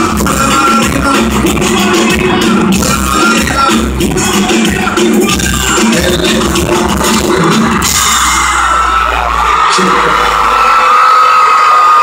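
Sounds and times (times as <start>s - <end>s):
crowd screaming and cheering: 0.0s - 12.0s
live concert music with heavy beat: 0.0s - 12.0s.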